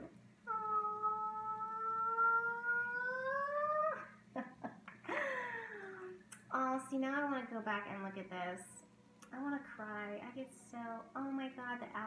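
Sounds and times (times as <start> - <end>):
long high vocal sound: 0.0 - 4.2.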